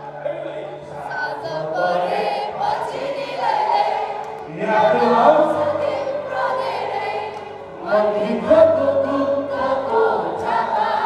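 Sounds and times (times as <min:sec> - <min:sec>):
crowd singing along: 0:00.0 - 0:11.0.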